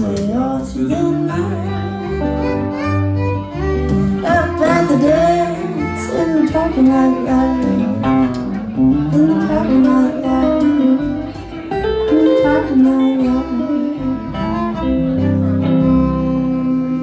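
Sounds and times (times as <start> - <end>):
electric guitar: 0.0 - 17.0
upright bass: 0.0 - 17.0
violin: 0.0 - 17.0.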